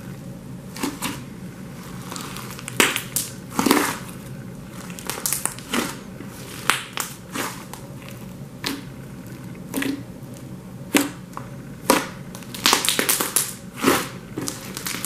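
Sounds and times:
slime squishing: 0.7s - 15.0s.

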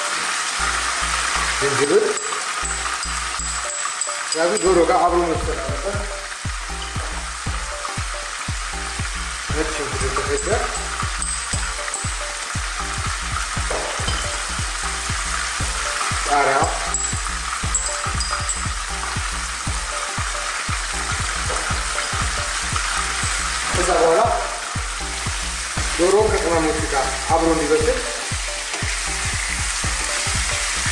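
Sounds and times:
chicken frying in oil: 0.0s - 30.9s.

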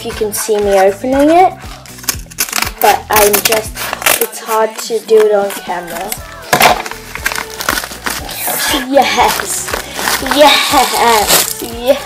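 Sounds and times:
wrapping material crinkling: 1.7s - 4.6s, 5.4s - 12.0s.

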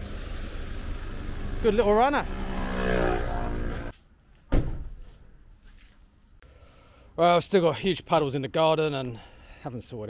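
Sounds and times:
car engine and road noise: 0.0s - 6.4s
sharp thump: 4.5s - 5.0s.

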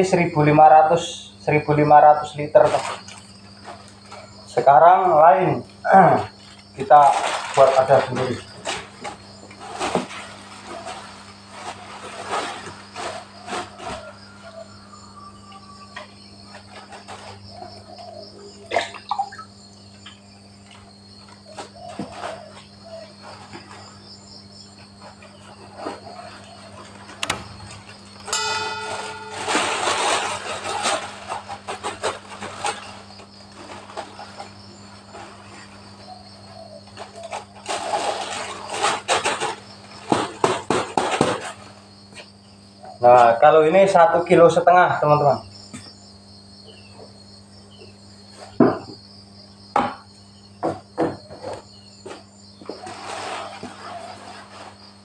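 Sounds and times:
insects chirping: 0.0s - 55.0s
plastic bags rustling: 6.5s - 14.0s
knocks and clicks: 27.2s - 30.3s.

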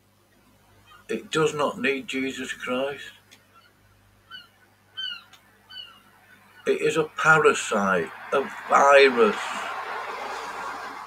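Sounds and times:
bird calling faintly: 3.4s - 6.8s.

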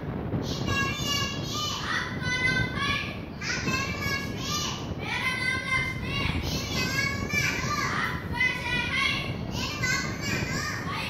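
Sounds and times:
children reciting together: 0.5s - 11.0s.

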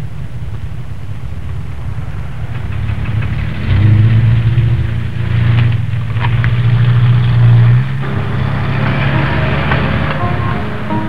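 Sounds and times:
engine rumbling: 0.0s - 11.0s.

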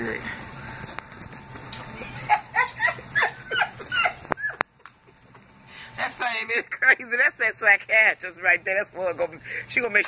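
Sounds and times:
woman laughing: 2.0s - 7.2s.

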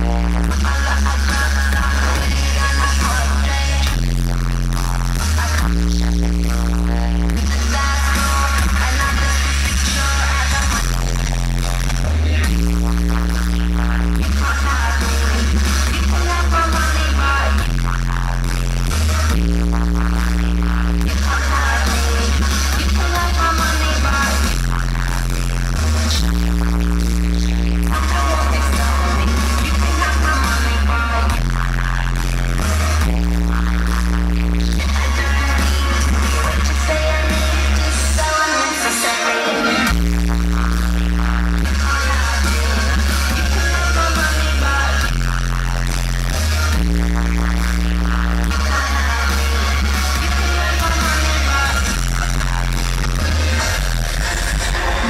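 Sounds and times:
deep bass line: 0.0s - 38.7s, 39.8s - 55.0s
live concert music: 0.0s - 55.0s.

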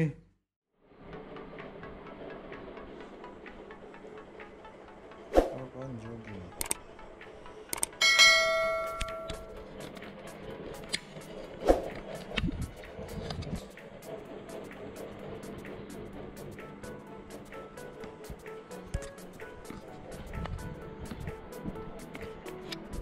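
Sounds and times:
sharp clicks: 6.5s - 6.8s, 7.7s - 8.0s
bright bell-like ding: 8.0s - 9.5s.

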